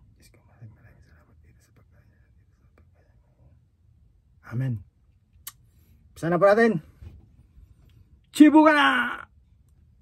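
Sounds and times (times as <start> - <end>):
quiet whispering: 0.0 - 3.9.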